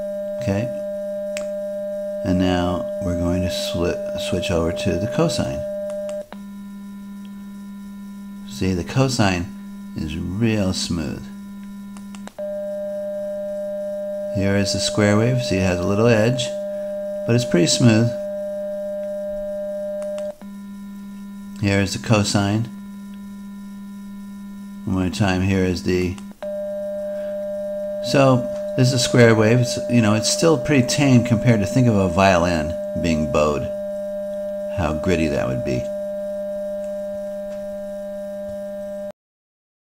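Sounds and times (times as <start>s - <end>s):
pure low cosine tone: 0.0s - 39.1s
click: 5.9s - 6.4s, 11.6s - 12.4s, 20.0s - 20.5s
low square-ish test tone: 12.4s - 39.1s.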